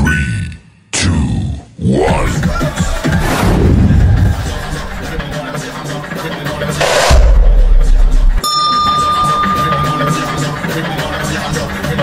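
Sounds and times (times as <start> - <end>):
party music: 6.4 - 12.0
swoosh into bass hit: 6.8 - 8.4
bell-like ding: 8.4 - 11.2.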